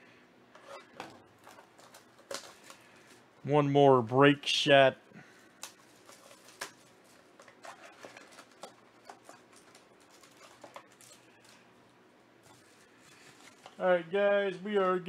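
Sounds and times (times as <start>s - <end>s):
foil box crinkling and clicking: 1.0s - 3.2s, 5.6s - 11.6s.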